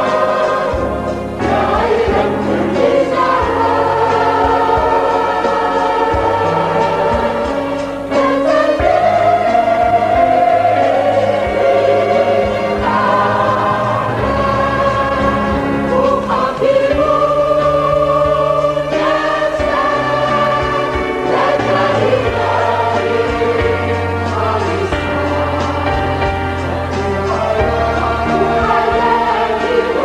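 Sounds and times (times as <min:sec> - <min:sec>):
mixed choir singing a hymn: 0:00.0 - 0:30.0
steady bass accompaniment: 0:00.0 - 0:30.0.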